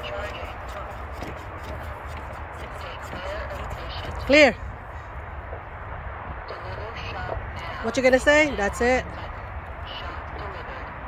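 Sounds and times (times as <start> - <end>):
faint voices: 0.0 - 5.1
wind rumbling on microphone: 0.0 - 11.0.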